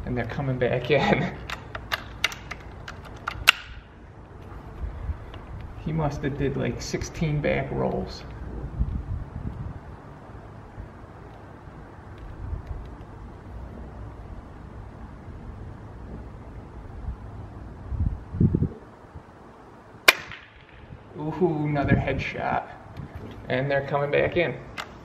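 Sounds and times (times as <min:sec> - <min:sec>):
suppressed air rifle shot: 0:20.0 - 0:20.9.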